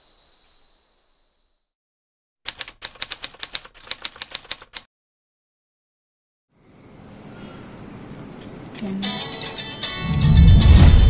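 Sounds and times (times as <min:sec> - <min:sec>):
typewriter keys clacking: 0:02.5 - 0:04.9.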